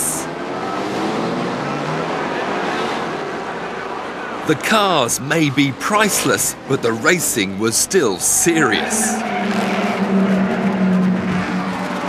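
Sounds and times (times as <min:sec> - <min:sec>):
racing cars accelerating: 0:00.0 - 0:12.0.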